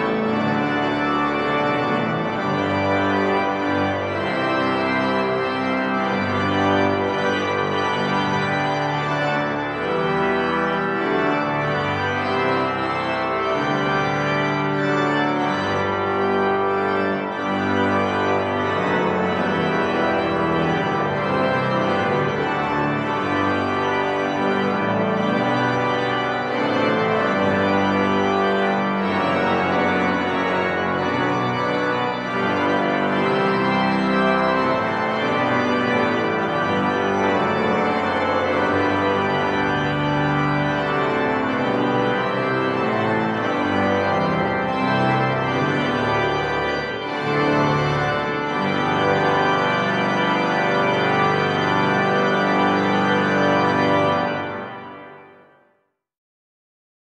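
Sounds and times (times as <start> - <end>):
pipe organ chords: 0.0 - 55.5.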